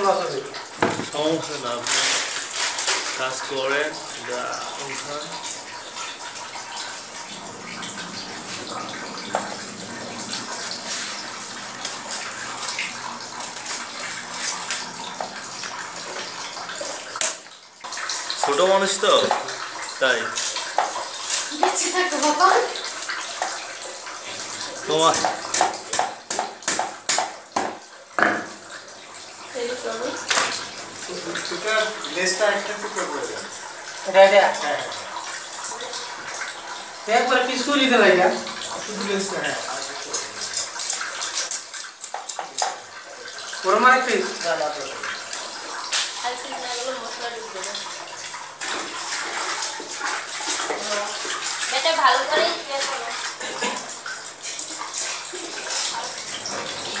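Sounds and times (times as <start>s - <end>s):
water running and splashing: 0.0s - 57.0s.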